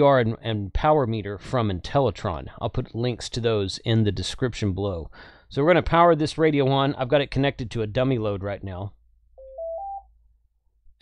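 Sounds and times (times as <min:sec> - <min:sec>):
radio power-on beeps rising: 0:09.4 - 0:10.0.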